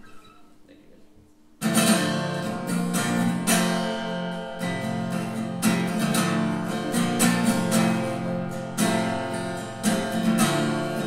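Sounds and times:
acoustic guitar strummed: 0:01.6 - 0:11.0.

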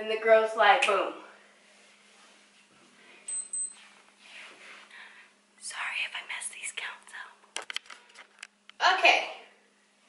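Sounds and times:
faint breathing: 0:04.4 - 0:05.4.

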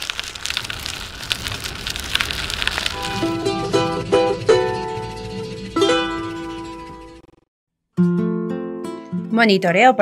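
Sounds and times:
crackling rain-like sound effect: 0:00.0 - 0:05.3
plucked string notes: 0:03.0 - 0:07.4.

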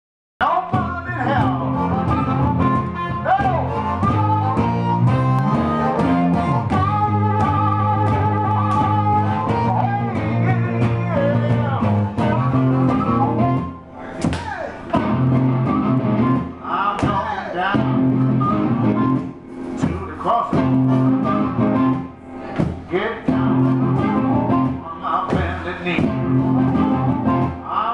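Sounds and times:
acoustic guitar: 0:00.4 - 0:27.9
harmonica playing bent notes: 0:01.1 - 0:14.1, 0:17.8 - 0:19.8, 0:20.6 - 0:22.5.

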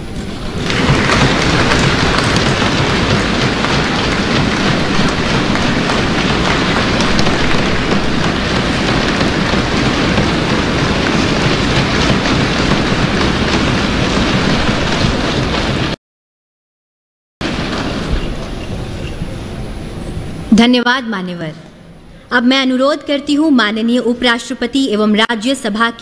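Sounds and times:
large audience applauding: 0:00.0 - 0:16.0.

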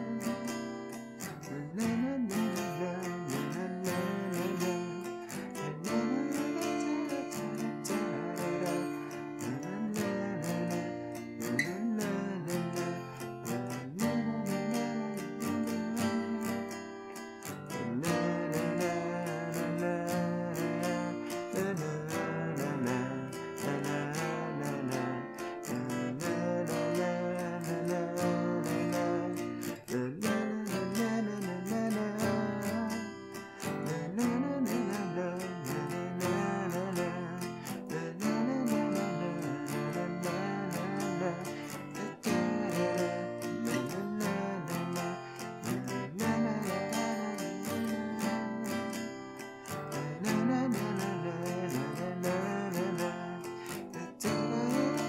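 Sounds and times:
acoustic guitar strumming chords: 0:00.0 - 0:55.0.

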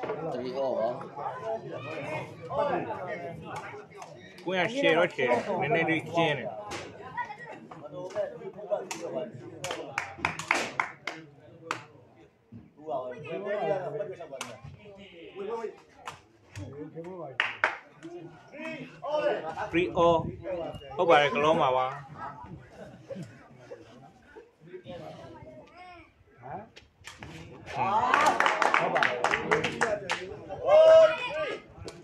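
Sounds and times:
spectators' voices: 0:00.0 - 0:32.0.

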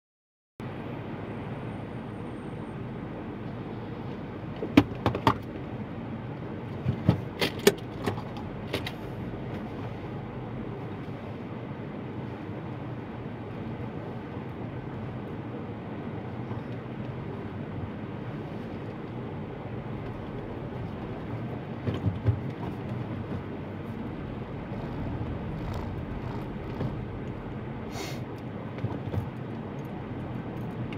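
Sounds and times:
car running noise inside cabin: 0:00.6 - 0:30.9.

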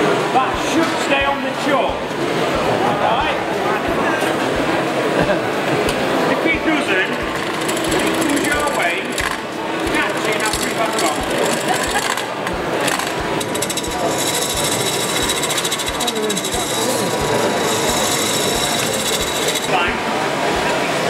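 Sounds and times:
low regular thumps: 0:05.9 - 0:20.0
gouge cutting wood on lathe: 0:06.8 - 0:20.4.

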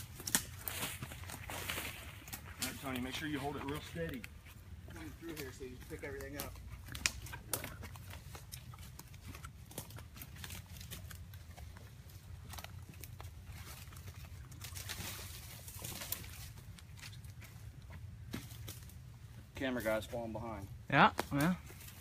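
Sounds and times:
footsteps crunching dry leaves: 0:00.0 - 0:19.4
crackling leaves and twigs: 0:00.0 - 0:22.0.

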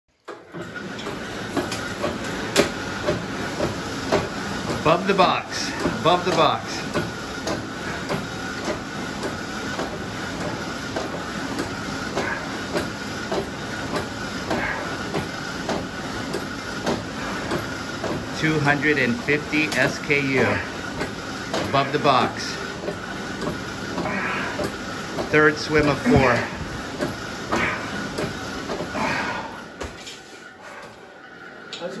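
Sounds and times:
flywheel whirring: 0:00.3 - 0:29.9.

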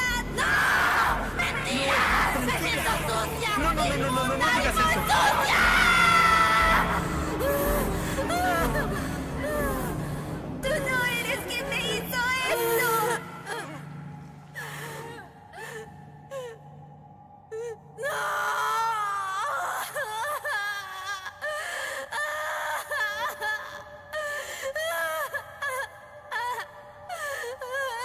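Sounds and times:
sustained music score: 0:00.0 - 0:21.3
woman sobbing and wailing: 0:00.0 - 0:28.0.

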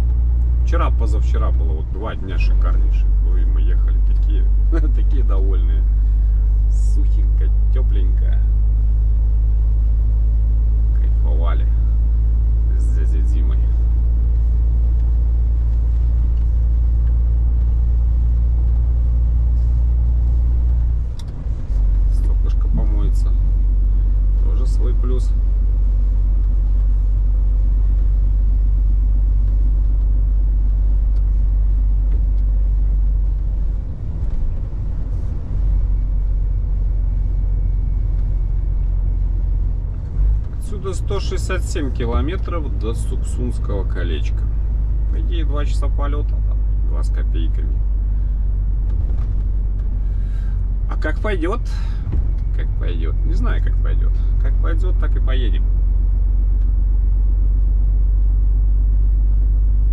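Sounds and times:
truck engine and road rumble: 0:00.0 - 0:59.9.

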